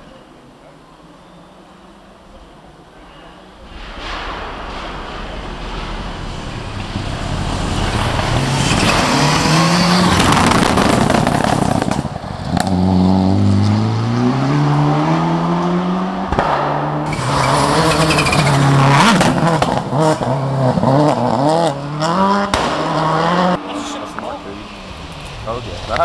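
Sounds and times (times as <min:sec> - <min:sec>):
rally car engine at speed: 0:05.6 - 0:26.0.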